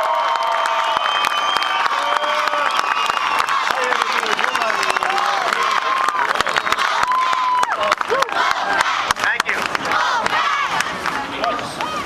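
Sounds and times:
crowd cheering and shouting: 0:00.0 - 0:12.0
hand claps: 0:00.3 - 0:12.0.

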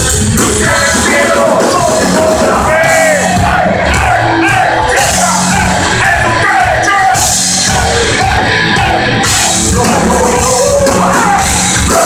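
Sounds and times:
heavy metal band playing live: 0:00.0 - 0:12.0
person singing: 0:00.4 - 0:12.0.

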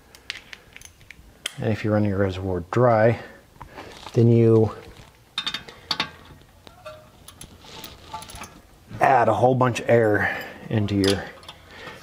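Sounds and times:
faint steady hum: 0:00.0 - 0:12.0
light metal clicks and ticks: 0:11.0 - 0:12.0.

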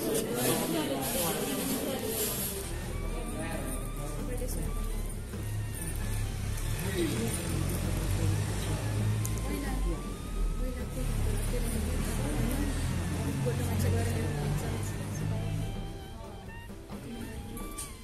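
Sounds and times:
crowd voices: 0:00.0 - 0:18.0.

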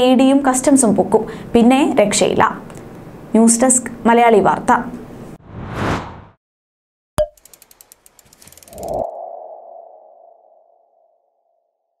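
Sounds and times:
run of ticks: 0:07.3 - 0:09.1.

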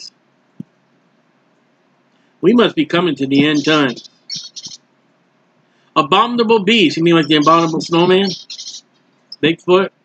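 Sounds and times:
short high-pitched chirps: 0:03.4 - 0:04.8, 0:07.2 - 0:09.5.

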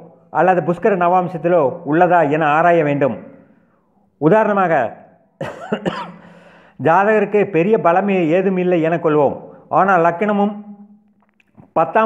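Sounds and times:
man clearing his throat: 0:05.4 - 0:06.4
man speaking: 0:11.6 - 0:12.0.

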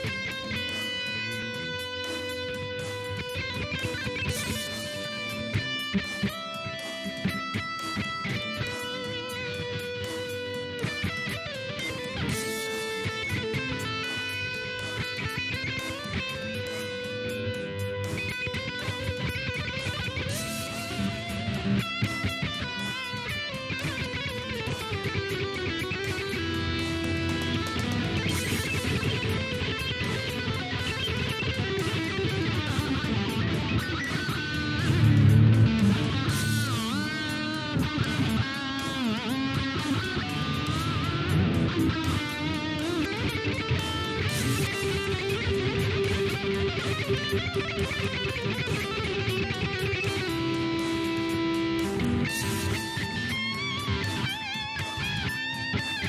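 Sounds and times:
instrumental rock electric guitar: 0:00.0 - 0:56.0.

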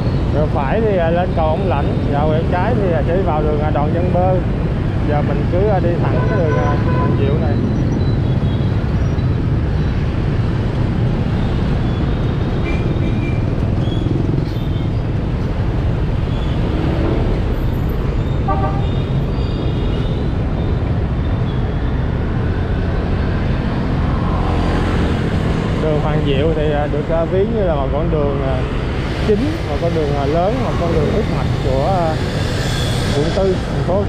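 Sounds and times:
traffic engines rumbling: 0:00.0 - 0:34.0
short horn toot: 0:18.5 - 0:18.9.

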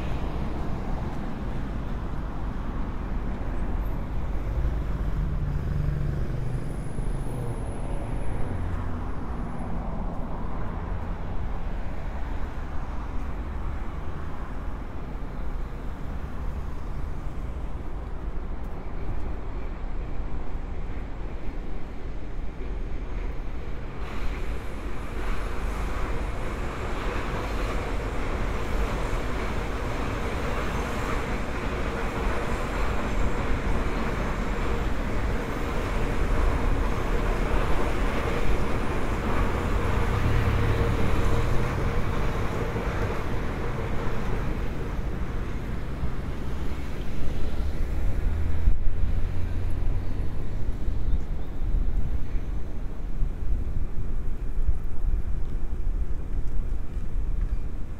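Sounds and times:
cars passing: 0:00.0 - 0:18.3, 0:22.8 - 0:54.2.

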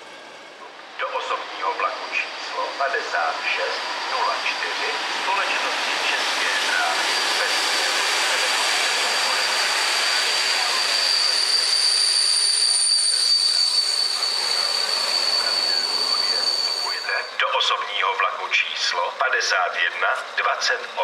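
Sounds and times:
diesel railcar passing: 0:00.0 - 0:21.0
higher wheel squeal: 0:06.2 - 0:17.4
high-pitched wheel squeal: 0:06.4 - 0:17.4.

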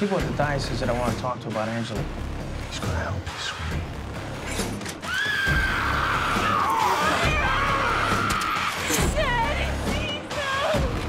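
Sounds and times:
woman shrieking: 0:05.1 - 0:09.5.

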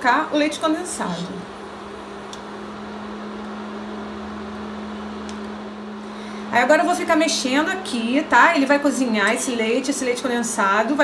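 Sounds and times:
electric cooktop humming: 0:00.0 - 0:11.0.

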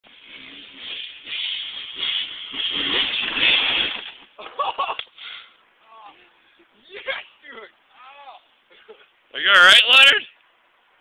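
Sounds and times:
dirt bike engine revving: 0:00.1 - 0:04.2
clattering knocks of bike landing: 0:00.1 - 0:04.8.

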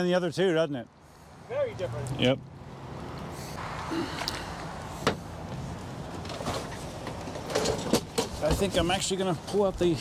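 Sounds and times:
steady outdoor noise: 0:00.0 - 0:10.0.

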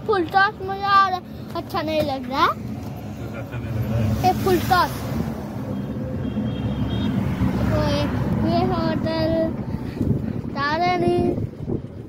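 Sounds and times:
tyres and body rumbling: 0:00.0 - 0:12.0.

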